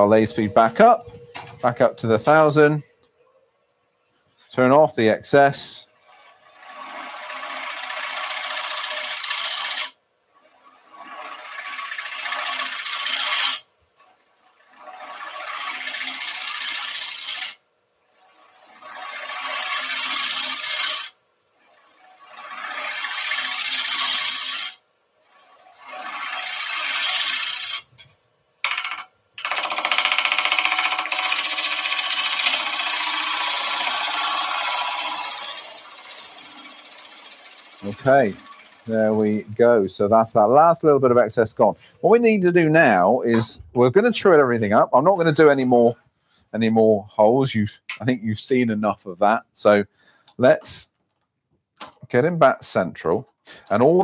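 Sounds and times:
turning tool cutting wood on lathe: 5.5 - 28.0, 28.6 - 40.7.

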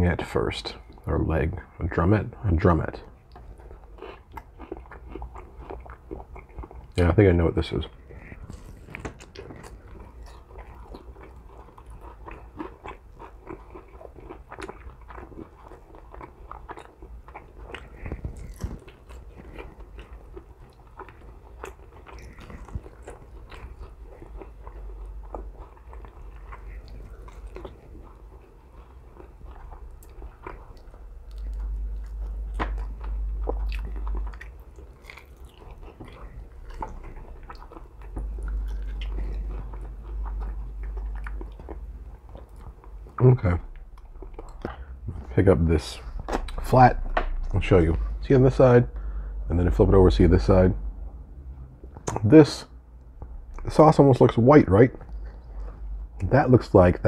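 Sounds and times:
person chewing chicken wing: 3.0 - 7.0, 7.7 - 45.2
low hum: 15.3 - 57.0.

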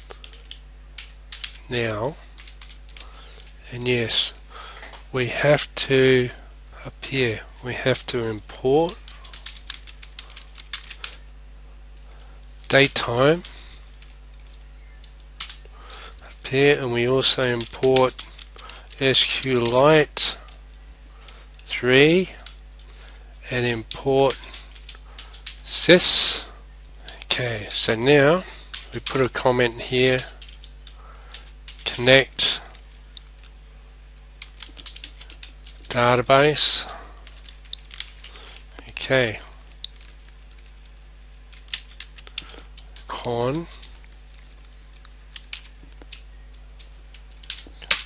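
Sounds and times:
computer keyboard keystrokes: 0.0 - 3.5, 8.8 - 11.2, 12.0 - 15.6, 17.3 - 19.8, 22.4 - 25.6, 30.1 - 32.1, 34.4 - 36.1, 36.8 - 38.6, 39.6 - 48.0
steady low hum: 0.0 - 48.0.

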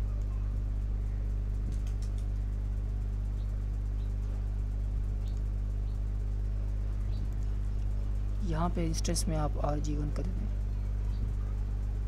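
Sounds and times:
low electrical hum: 0.0 - 12.0
faint clicks: 1.6 - 2.4.

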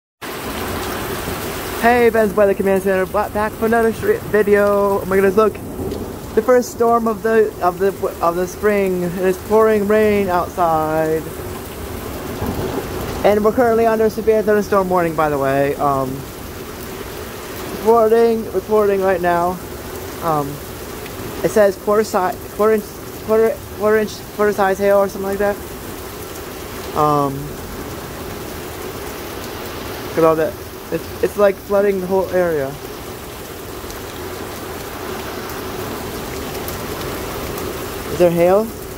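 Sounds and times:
heavy rain pouring: 0.2 - 38.9.

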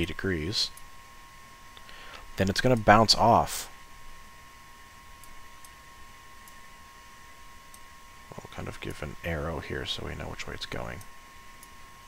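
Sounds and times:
faint high-pitched hum: 0.0 - 12.0.

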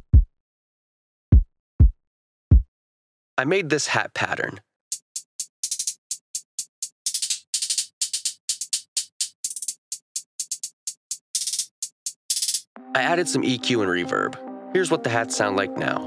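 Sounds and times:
programmed closed hi-hat pattern: 4.9 - 12.7.

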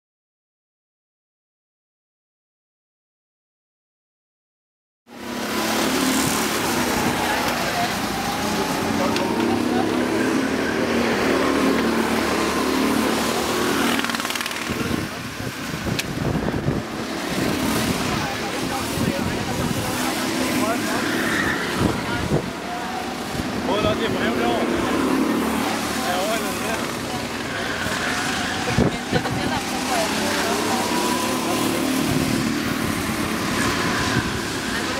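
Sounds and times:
go-kart engines droning: 5.1 - 34.9
people's voices: 5.2 - 34.9.

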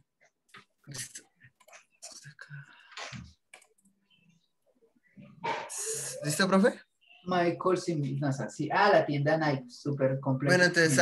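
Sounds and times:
computer clicking: 0.2 - 4.2.

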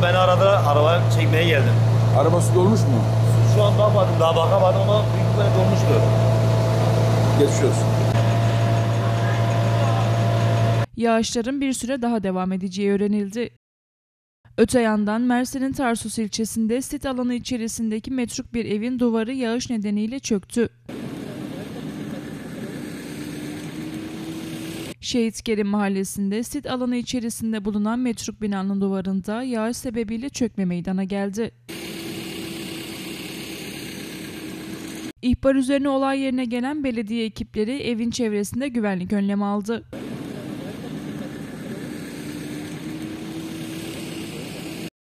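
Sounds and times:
faint rising hum: 0.0 - 10.9, 40.0 - 44.9
vehicle engine idling: 0.0 - 10.9, 20.9 - 25.0, 40.0 - 44.9.

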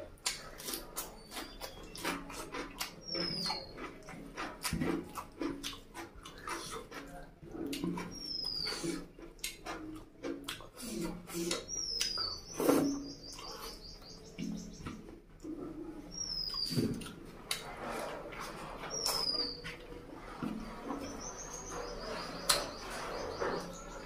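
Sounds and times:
wet chewing and lip smacks: 0.0 - 23.9
bird chirping: 0.6 - 4.1, 8.0 - 9.0, 11.4 - 15.0, 16.0 - 17.7, 18.8 - 24.0.

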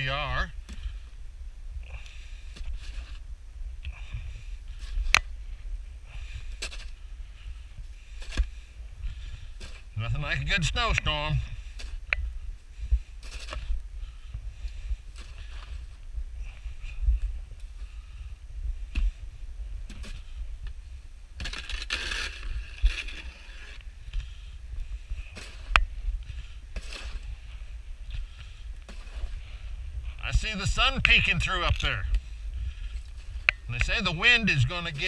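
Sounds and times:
crunching in deep snow: 1.8 - 3.3, 4.0 - 35.0.

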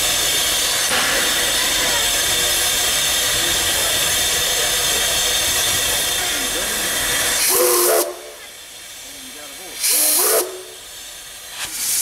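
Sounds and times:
soft hiss of steam: 0.0 - 12.0
steam locomotive chuffing: 0.0 - 12.0.

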